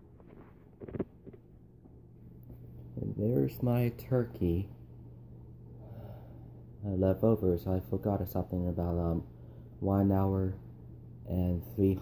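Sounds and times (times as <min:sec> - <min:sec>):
steady low hum: 0:00.0 - 0:12.0
man speaking: 0:03.0 - 0:04.8, 0:06.8 - 0:10.6, 0:11.3 - 0:12.0
soft breath: 0:05.7 - 0:06.7, 0:09.3 - 0:09.8.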